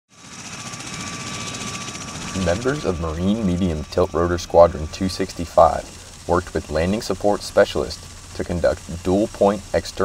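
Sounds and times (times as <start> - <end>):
thin steady whine: 0.1 - 10.0
tiltrotor aircraft rotors pulsing: 0.1 - 10.0.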